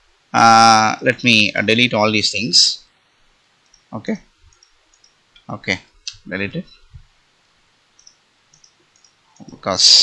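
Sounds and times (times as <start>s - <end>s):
faint mouse clicks: 3.6s - 3.9s, 4.5s - 5.5s, 8.0s - 9.6s.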